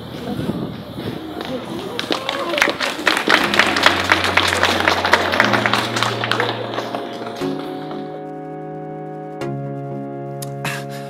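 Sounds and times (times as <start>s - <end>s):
small crowd applauding: 1.4s - 8.2s
music with long low notes: 3.2s - 11.0s.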